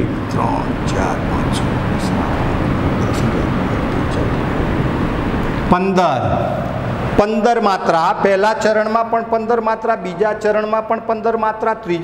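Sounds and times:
loud background noise: 0.0 - 12.0.

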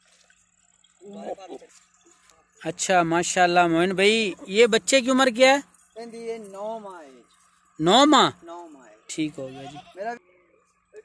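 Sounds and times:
goat bleating: 9.2 - 10.2.

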